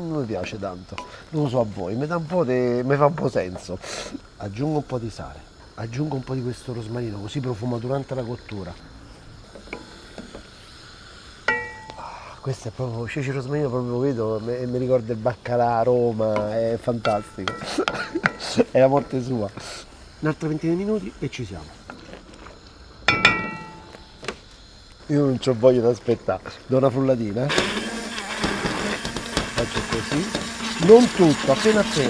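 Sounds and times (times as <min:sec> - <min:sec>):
spoon knocking against pan: 0:16.4 - 0:19.2, 0:23.1 - 0:24.0.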